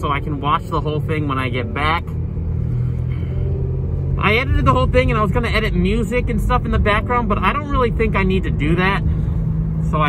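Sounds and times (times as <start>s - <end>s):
low engine hum: 0.0s - 10.0s
road rumble: 0.0s - 10.0s.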